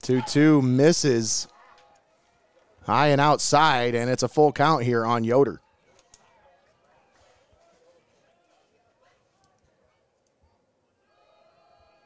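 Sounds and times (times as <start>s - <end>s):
faint distant voices: 5.3s - 12.0s.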